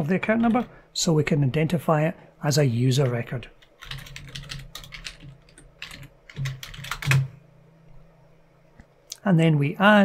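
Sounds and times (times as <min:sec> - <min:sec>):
computer keyboard typing: 0:00.2 - 0:00.7, 0:03.6 - 0:07.3.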